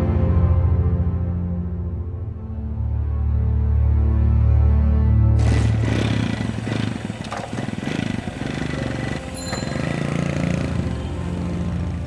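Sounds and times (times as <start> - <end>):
tense drama music with drone: 0.0 - 12.0
brief high tones: 9.3 - 10.2.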